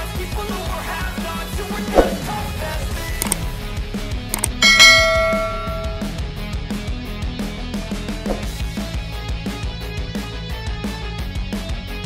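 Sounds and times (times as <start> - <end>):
short click: 3.2 - 3.4, 4.4 - 6.1
bright bell chime: 4.4 - 6.2.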